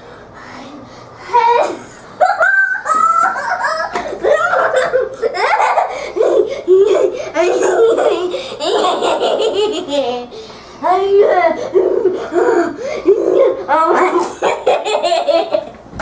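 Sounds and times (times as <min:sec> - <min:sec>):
girl giggling: 0:01.4 - 0:10.4, 0:11.1 - 0:15.8.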